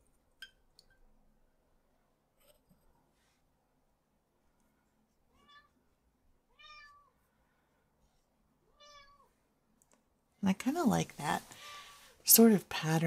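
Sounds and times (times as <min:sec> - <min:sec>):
cat meowing faintly: 0:05.3 - 0:05.8, 0:06.5 - 0:07.2, 0:08.7 - 0:09.4.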